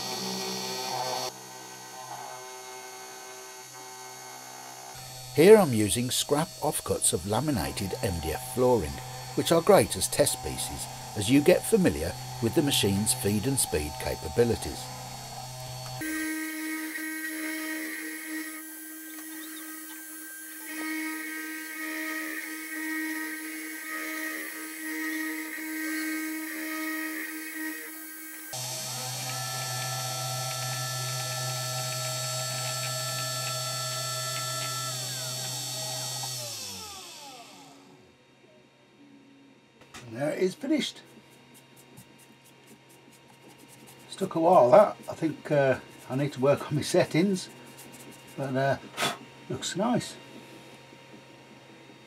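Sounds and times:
router spindle motor whining: 0:00.0 - 0:38.0.

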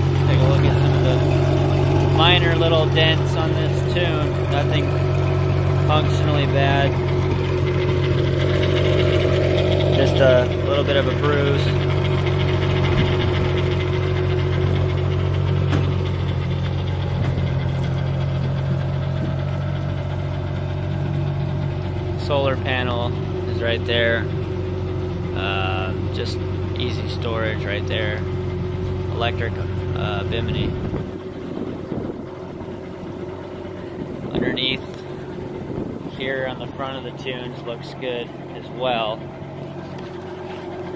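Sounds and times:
outboard motor idling: 0:00.0 - 0:40.9.

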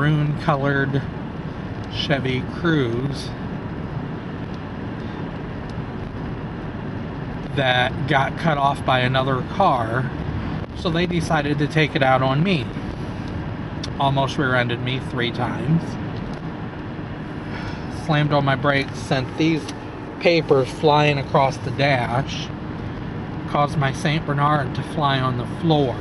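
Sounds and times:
car engine and tyre noise: 0:00.0 - 0:26.0.

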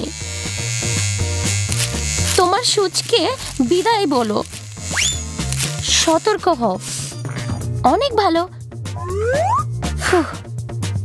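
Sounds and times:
electric hair clipper buzzing: 0:00.0 - 0:07.4.

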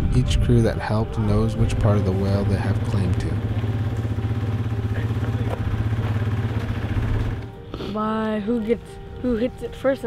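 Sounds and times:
small engine running: 0:01.7 - 0:07.6.

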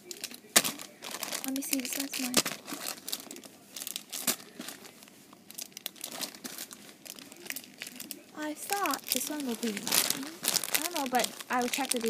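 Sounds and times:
plastic bags crinkling: 0:00.0 - 0:12.0.

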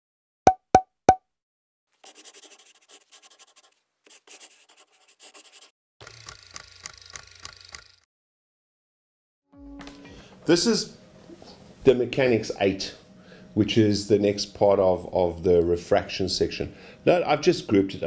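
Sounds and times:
pen scratching on paper: 0:02.0 - 0:05.7
low hum: 0:09.6 - 0:11.4.

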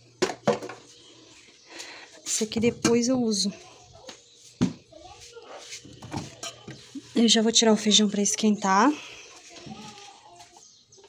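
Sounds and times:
dishes clinking: 0:06.0 - 0:07.0.

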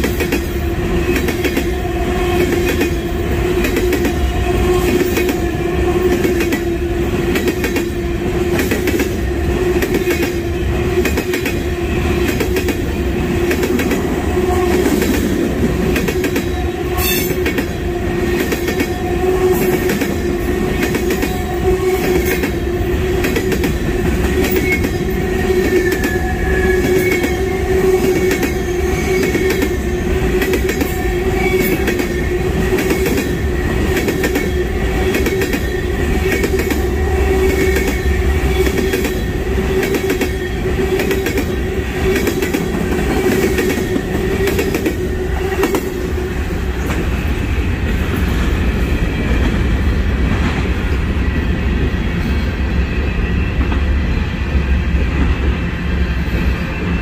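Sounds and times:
steel wheels rumbling on rail: 0:00.0 - 0:57.0.

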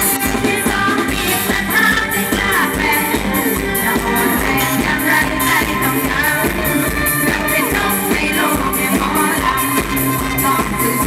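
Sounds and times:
band playing up-tempo song: 0:00.0 - 0:11.0
fast drum beat: 0:00.0 - 0:11.0
person singing: 0:00.0 - 0:11.0.

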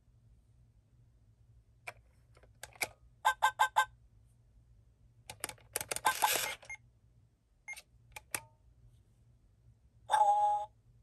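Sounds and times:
toy electronic blips: 0:06.0 - 0:06.8.

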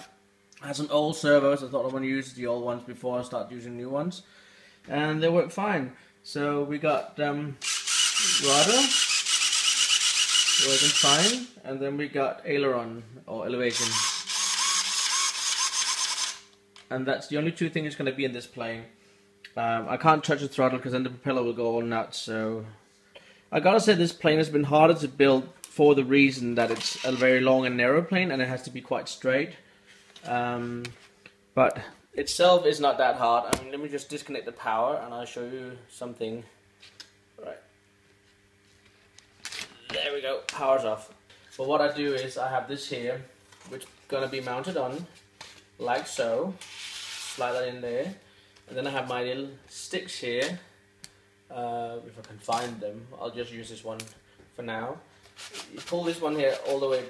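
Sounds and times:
faint steady hum: 0:00.0 - 0:57.0
servo motor whirring: 0:07.6 - 0:11.5, 0:13.7 - 0:16.5
short scrape: 0:46.6 - 0:47.6.

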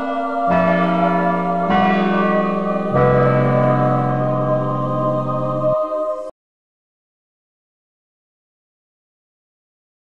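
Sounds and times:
church bells ringing: 0:00.0 - 0:06.3.

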